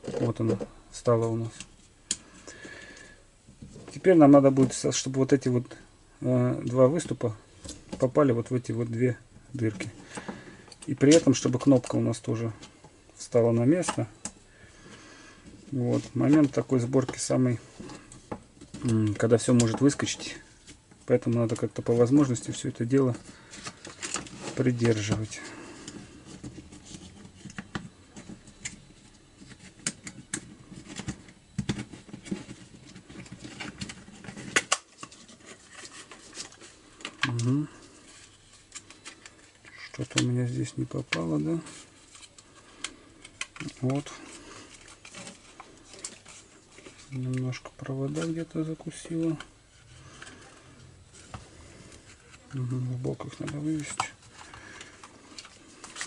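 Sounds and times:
plastic parts clicking and scraping: 0.0s - 2.2s, 9.6s - 12.9s, 13.6s - 14.4s, 15.4s - 56.0s.

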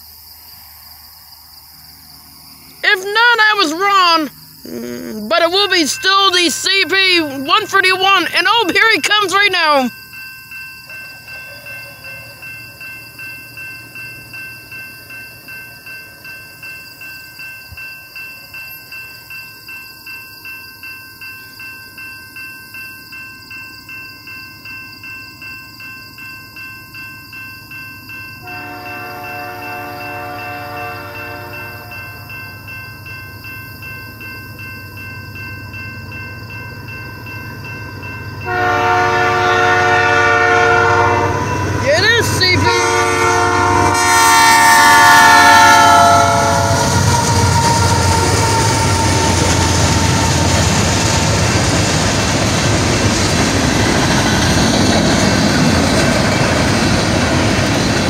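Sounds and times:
railroad crossing bell dinging: 2.2s - 4.6s, 5.3s - 58.0s
train horn blasts: 28.4s - 32.0s, 38.4s - 50.8s.

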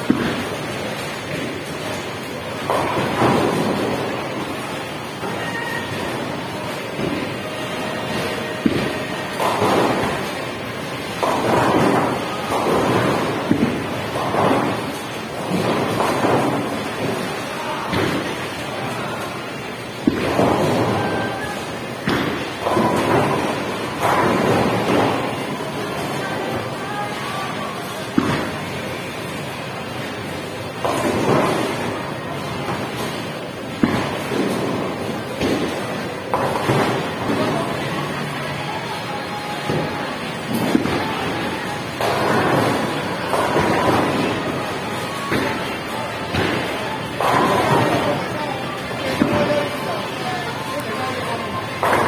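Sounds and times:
bowling balls rumbling down lanes: 0.0s - 52.0s.

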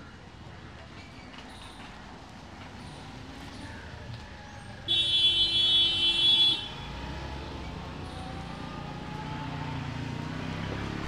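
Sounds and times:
street traffic rumble: 0.0s - 11.0s
vehicle horn blast: 4.9s - 6.8s.

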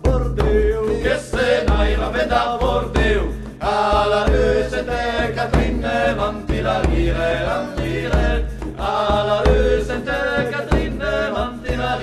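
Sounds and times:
voices chanting together: 0.0s - 12.0s.

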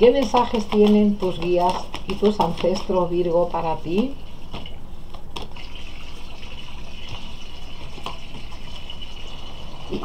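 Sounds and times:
cards being shuffled: 0.0s - 3.1s.

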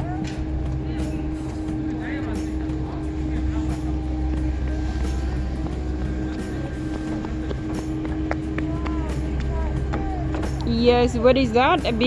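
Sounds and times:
steady low droning hum: 0.0s - 12.0s.

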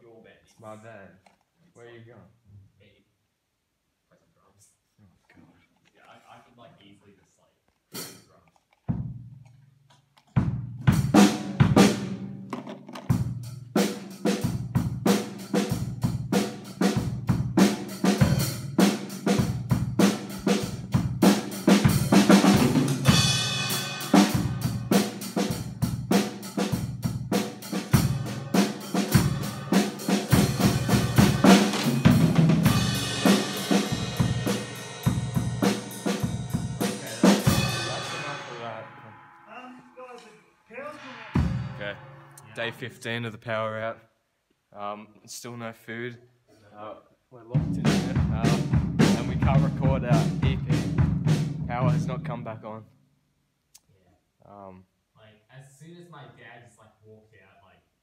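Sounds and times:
cymbals ringing: 23.0s - 25.3s, 27.8s - 43.0s
snare drum hits: 27.8s - 34.7s
bass drum hits: 28.0s - 38.8s, 41.0s - 42.7s, 47.6s - 52.5s.

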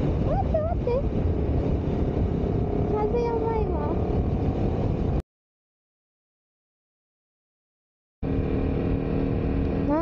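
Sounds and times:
wind buffeting microphone: 0.0s - 5.2s
motorcycle engine running: 8.2s - 10.0s.

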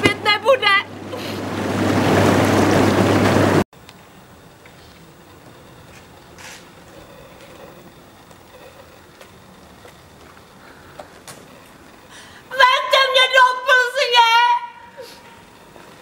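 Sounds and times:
blower hum: 0.0s - 16.0s.

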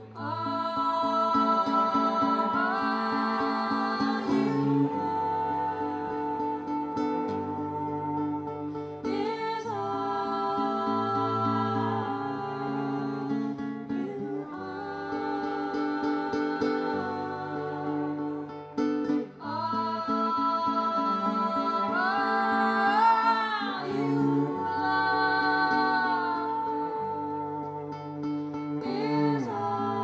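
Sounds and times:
bowed cello: 0.0s - 30.0s
strummed acoustic guitar: 0.0s - 30.0s
women singing in harmony: 0.0s - 30.0s.

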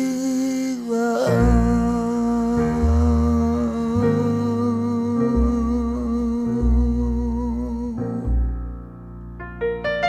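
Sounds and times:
man humming a long note: 0.0s - 8.4s
plucked double bass notes: 1.3s - 10.0s.

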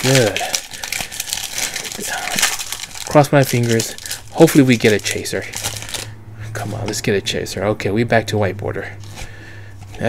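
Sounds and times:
foil wrapper crinkling and tearing: 0.0s - 6.1s.

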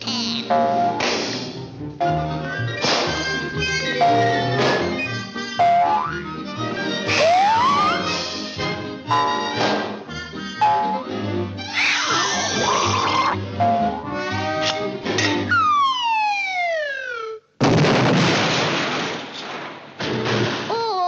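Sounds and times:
orchestral cartoon music: 0.0s - 16.0s
slapstick hits: 2.8s - 3.2s.

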